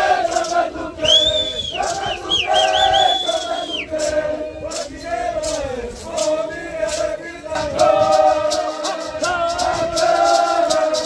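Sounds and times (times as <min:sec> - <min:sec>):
chorus chanting in unison: 0:00.0 - 0:11.0
high piercing whistle-like call: 0:01.0 - 0:04.0.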